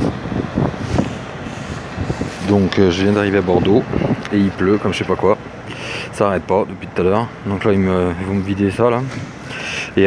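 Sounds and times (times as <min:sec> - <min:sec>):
heavy rain hissing: 0:09.4 - 0:10.0.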